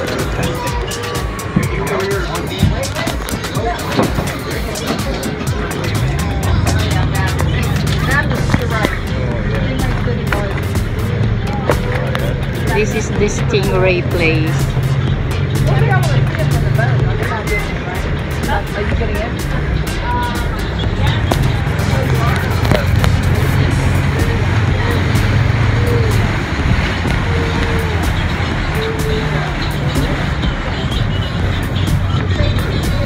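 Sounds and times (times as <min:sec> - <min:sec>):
boat engine humming: 0:00.0 - 0:33.0
water rushing: 0:00.0 - 0:33.0.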